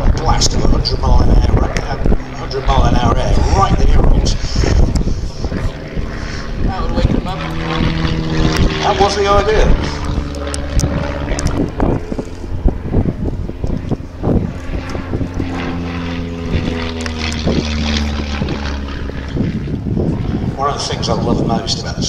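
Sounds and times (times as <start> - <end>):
propeller plane droning overhead: 0.0 - 22.0.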